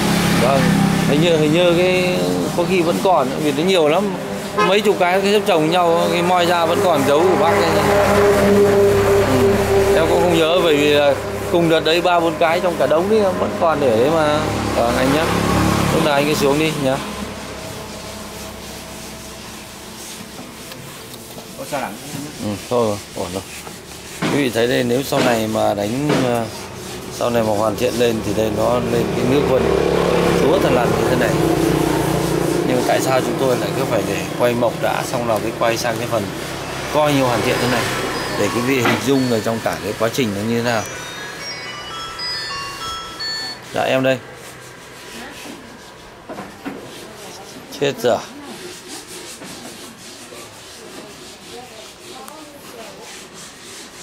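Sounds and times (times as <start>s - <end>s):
cloth rubbing on wood: 0.4s - 54.0s.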